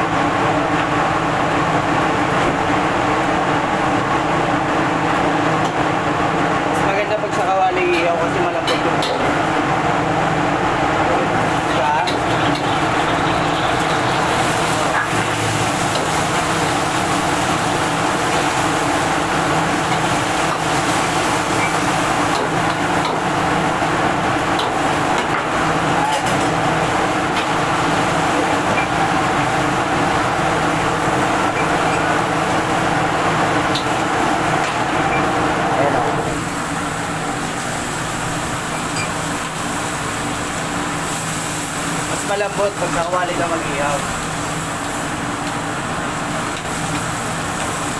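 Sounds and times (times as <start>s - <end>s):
gas burners and exhaust roaring: 0.0s - 47.9s.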